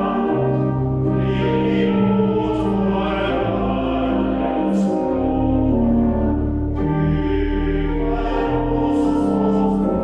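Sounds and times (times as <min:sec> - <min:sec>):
pipe organ playing chords: 0:00.0 - 0:10.0
voices singing a hymn: 0:00.0 - 0:10.0.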